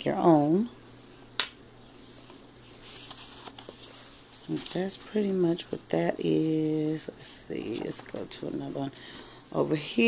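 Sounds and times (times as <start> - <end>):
low steady hum: 0.0 - 10.0
book page turning: 2.2 - 5.4, 7.6 - 8.6.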